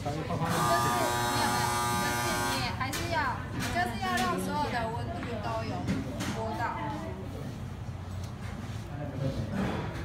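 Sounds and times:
steady electric buzz: 0.4s - 2.8s.

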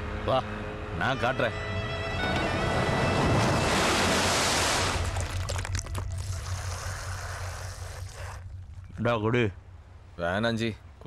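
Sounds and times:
background music with held tones: 0.0s - 3.7s.

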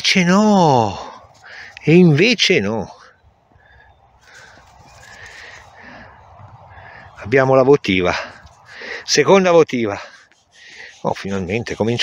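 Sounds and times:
soft scratching of fingers on metal: 7.8s - 12.0s.

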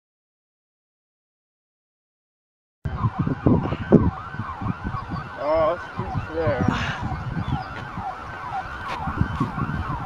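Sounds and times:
wavering siren-like sound: 2.9s - 10.0s.

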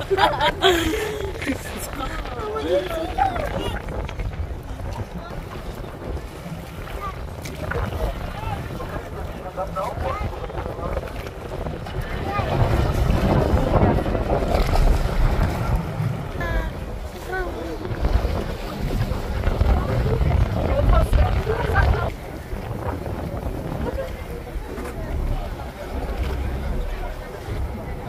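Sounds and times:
boat engines: 0.0s - 28.0s
faint passengers' voices: 0.0s - 28.0s
water: 0.0s - 28.0s
wind buffeting microphone: 0.0s - 28.0s.

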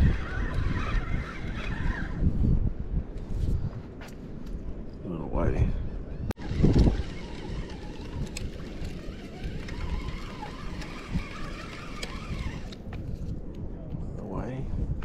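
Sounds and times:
wind: 0.0s - 15.0s.

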